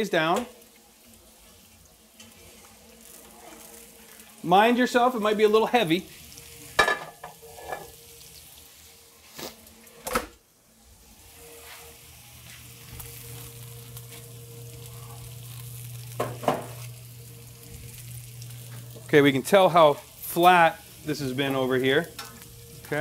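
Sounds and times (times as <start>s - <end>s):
chicken sizzling in a skillet: 0.0s - 10.0s, 10.8s - 23.0s.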